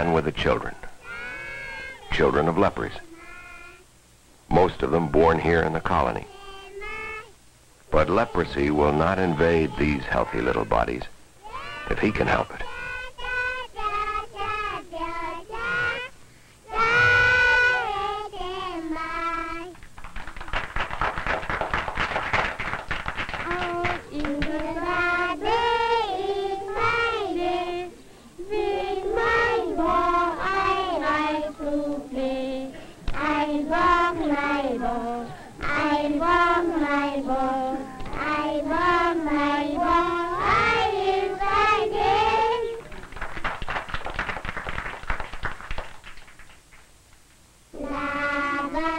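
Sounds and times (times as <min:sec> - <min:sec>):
children singing: 0:08.0 - 0:16.1, 0:16.7 - 0:19.8, 0:23.4 - 0:42.9, 0:47.8 - 0:48.9.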